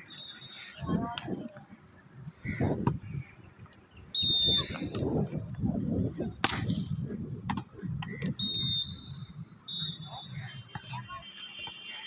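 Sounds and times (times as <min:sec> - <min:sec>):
referee's whistle: 0:00.0 - 0:00.6, 0:04.1 - 0:04.9, 0:08.3 - 0:12.0.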